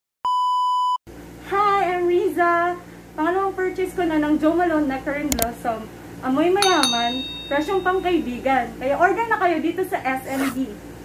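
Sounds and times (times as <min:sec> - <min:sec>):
low room hum: 0:01.1 - 0:11.0.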